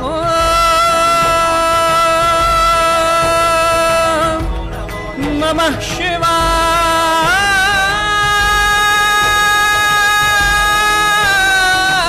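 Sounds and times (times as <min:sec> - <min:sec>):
man singing a long note: 0:00.0 - 0:04.5, 0:05.2 - 0:12.0.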